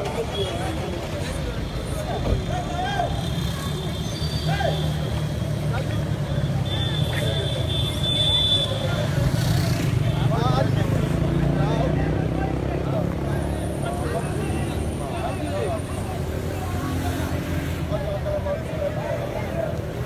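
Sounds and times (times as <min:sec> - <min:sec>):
people talking and calling out: 0:00.0 - 0:20.0.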